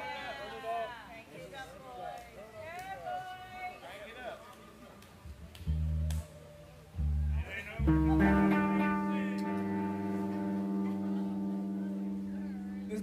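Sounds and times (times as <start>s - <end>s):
bass guitar low notes: 5.3s - 13.0s
electric guitar chord ringing: 7.8s - 13.0s.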